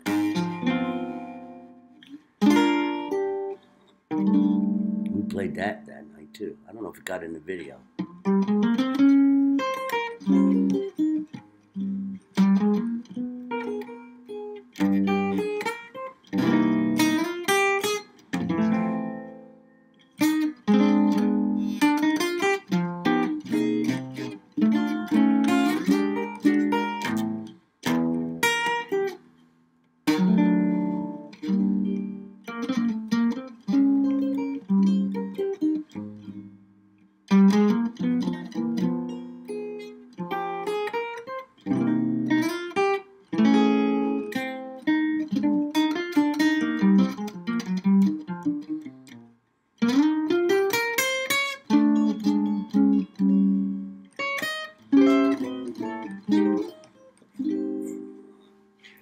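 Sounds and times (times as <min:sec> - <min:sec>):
solo jazz guitar: 0:00.0 - 0:59.0.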